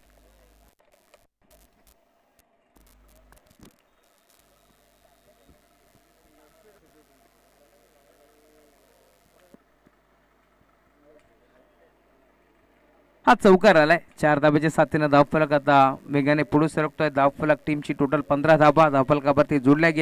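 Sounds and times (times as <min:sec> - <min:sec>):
faint distant voices: 0:01.5 - 0:13.3.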